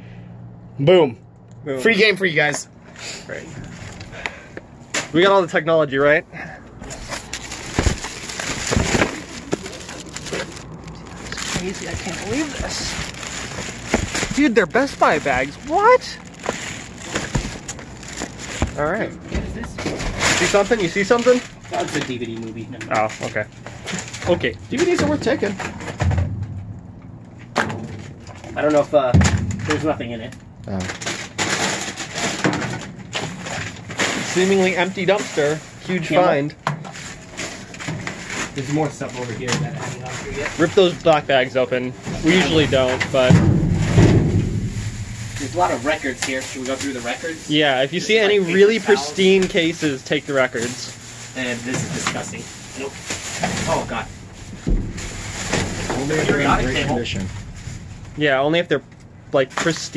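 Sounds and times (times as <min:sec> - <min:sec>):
plastic bags rustling and crinkling: 0:03.6 - 0:04.2, 0:06.8 - 0:26.0, 0:30.7 - 0:59.9
gloved hands rummaging: 0:06.9 - 0:18.9.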